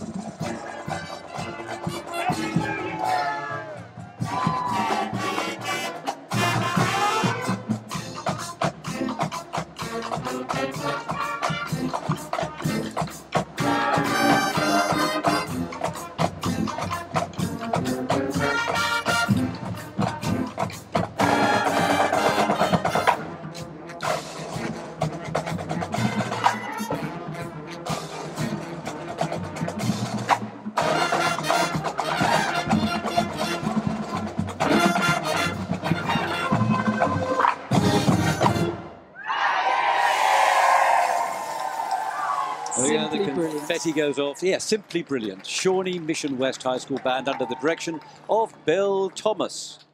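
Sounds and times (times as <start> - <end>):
crowd cheering: 0.0 - 7.4, 39.1 - 49.1
snare and bass drumline: 0.0 - 38.8
marching band playing: 0.0 - 39.1, 39.8 - 49.6.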